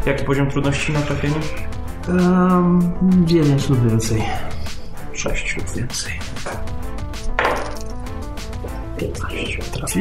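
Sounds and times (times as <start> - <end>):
background music: 0.0 - 10.0
dice clattering on table: 7.4 - 7.9.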